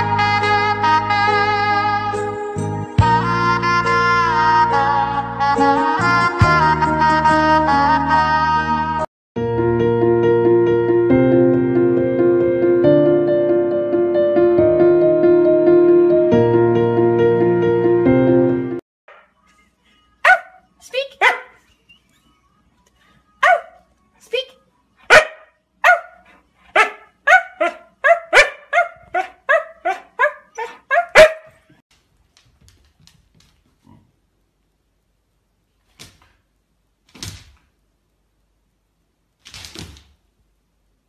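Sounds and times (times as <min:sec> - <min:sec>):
dog barking: 0:20.2 - 0:20.6, 0:21.2 - 0:21.6, 0:23.4 - 0:23.8, 0:25.0 - 0:31.8.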